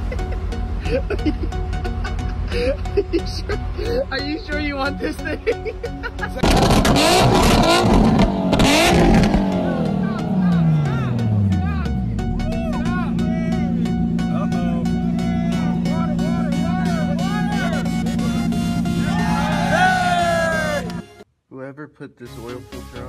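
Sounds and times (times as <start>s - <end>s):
truck engine starting and revving: 0.0s - 21.2s
voices: 9.4s - 21.0s.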